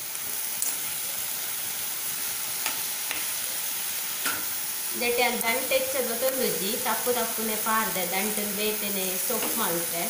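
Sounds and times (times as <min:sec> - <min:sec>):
leaves sizzling in a pan: 0:00.0 - 0:10.0.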